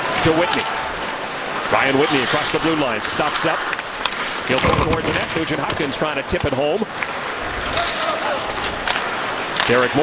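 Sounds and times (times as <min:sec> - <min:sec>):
sticks and skates clicking on ice: 0:07.8 - 0:09.9.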